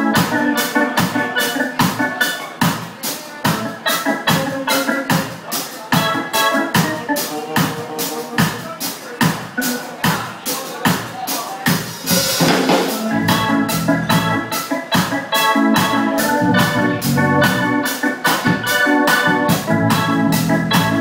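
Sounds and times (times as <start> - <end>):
organ-style keyboard chords: 0.0 - 10.6, 11.6 - 21.0
ska band playing: 0.0 - 21.0.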